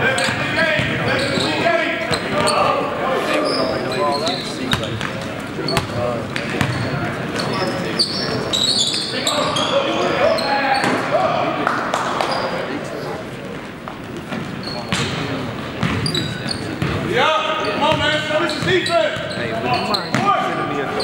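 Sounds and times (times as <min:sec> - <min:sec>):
players shouting: 0:00.0 - 0:03.9
sneakers squeaking: 0:00.0 - 0:11.1, 0:12.2 - 0:21.0.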